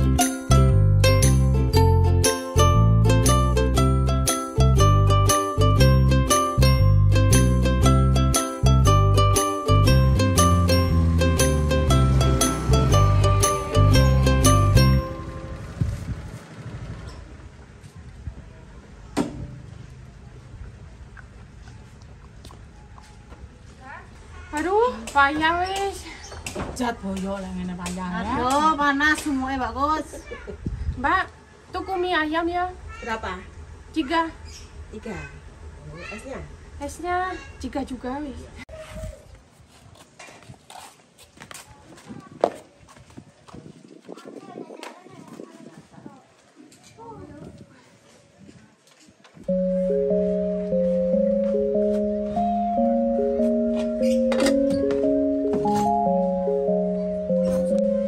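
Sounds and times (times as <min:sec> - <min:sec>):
music: 0:00.0 - 0:15.6, 0:49.5 - 0:58.0
motor scooter rumbling: 0:08.8 - 0:22.6.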